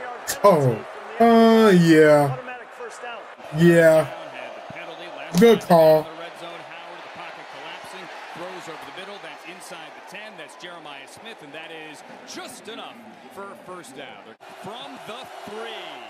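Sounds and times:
commentator talking: 0:00.0 - 0:02.4, 0:03.5 - 0:04.1, 0:05.3 - 0:06.0
stadium crowd noise: 0:00.0 - 0:16.0.

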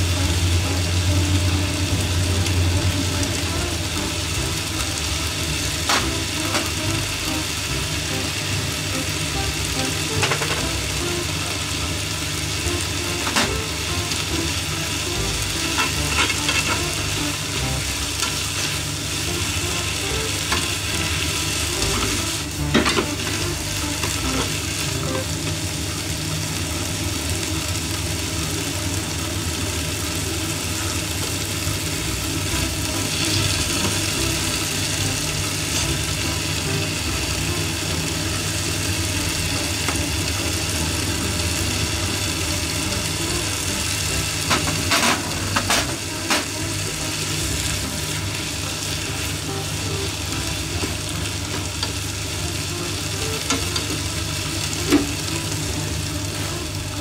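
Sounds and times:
vegetables sizzling in a frying pan: 0:00.0 - 0:57.0.

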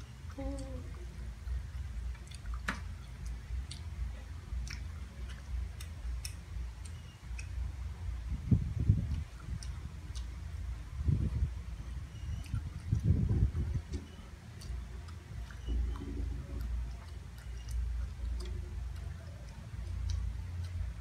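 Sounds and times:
low bursts: 0:00.0 - 0:21.0
person chewing: 0:02.1 - 0:07.6, 0:09.0 - 0:10.4, 0:14.0 - 0:21.0.

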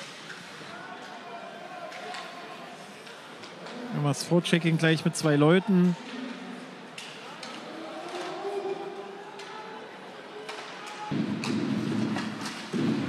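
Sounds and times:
hockey sticks and puck clicking: 0:10.4 - 0:12.8.

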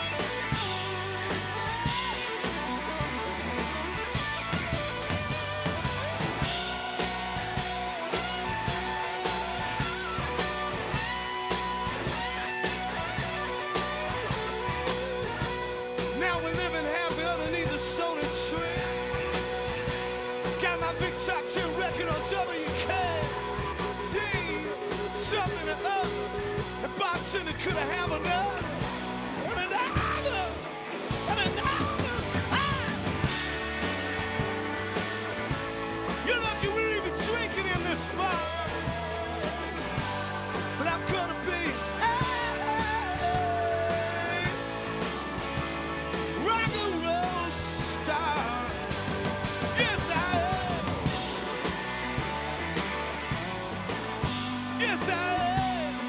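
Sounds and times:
drum kit beat: 0:00.0 - 0:56.0
electric guitars bending notes: 0:00.0 - 0:56.0
live rock band playing: 0:00.0 - 0:56.0.

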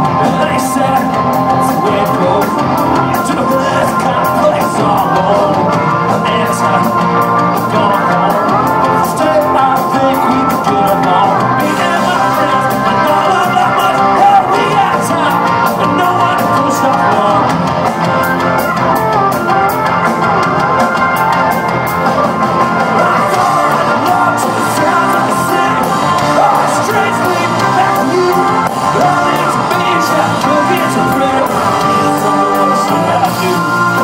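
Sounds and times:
live rock band playing: 0:00.0 - 0:34.0.

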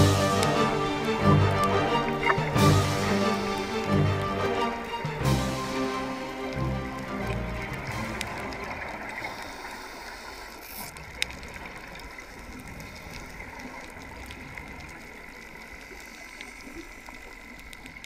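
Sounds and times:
background music: 0:00.0 - 0:09.2.

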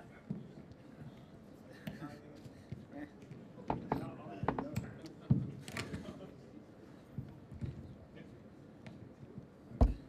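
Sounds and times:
microphone handling knocks and rubs: 0:09.8 - 0:10.0.

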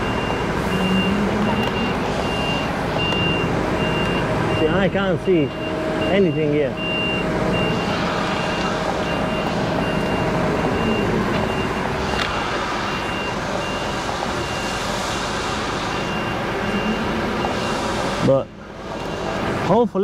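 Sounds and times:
diesel engine running: 0:00.0 - 0:20.0
truck reversing alarm beeping: 0:00.0 - 0:20.0.

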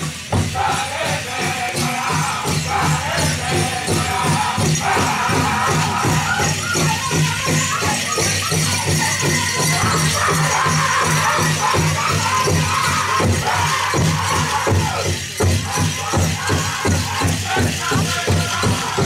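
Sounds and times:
big drum beating: 0:00.0 - 0:19.0
jingle cones rattling: 0:00.0 - 0:19.0
group singing in high voices: 0:00.2 - 0:19.0.

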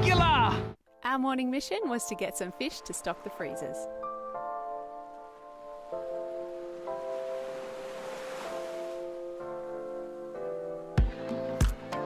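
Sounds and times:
background music sustained chords: 0:00.0 - 0:12.0
rushing swell: 0:06.5 - 0:09.2.

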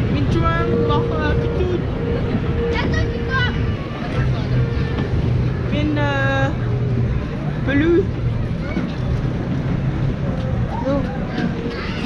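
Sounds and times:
faint voices: 0:00.0 - 0:12.0
wind buffeting microphone: 0:00.0 - 0:12.0.

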